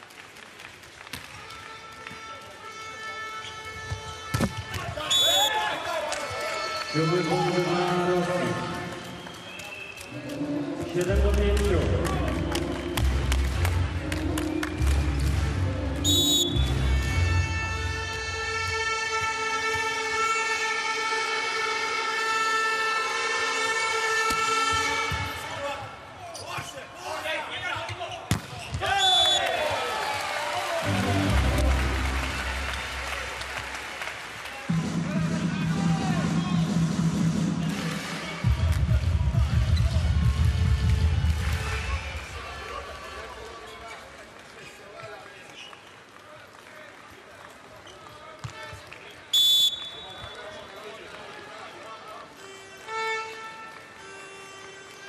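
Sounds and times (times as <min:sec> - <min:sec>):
referee's whistle: 0:05.0 - 0:05.6, 0:09.2 - 0:10.1, 0:16.0 - 0:16.8, 0:28.6 - 0:29.5, 0:49.3 - 0:50.6
music over pa: 0:10.3 - 0:25.0, 0:30.8 - 0:33.9, 0:34.7 - 0:42.4.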